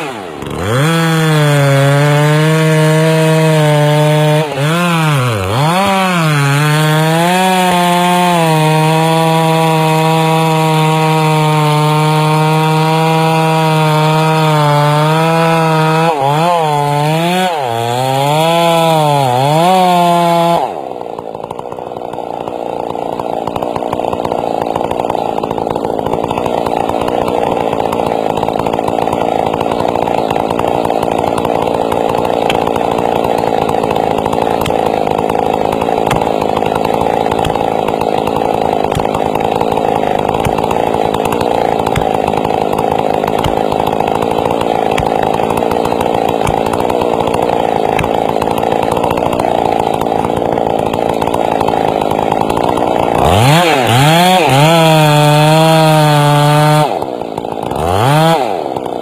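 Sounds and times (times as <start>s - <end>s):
chainsaw cutting through tree trunk: 0.0s - 59.0s.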